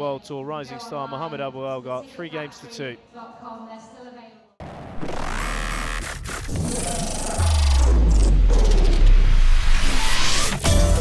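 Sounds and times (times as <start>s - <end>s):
deep bass: 4.6s - 11.0s.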